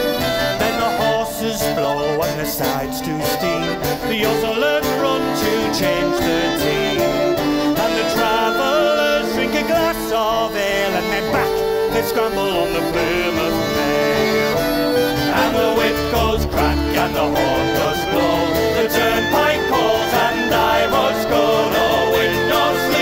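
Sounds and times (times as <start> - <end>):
acoustic folk band playing: 0.0 - 23.0
men singing in a group: 0.0 - 23.0.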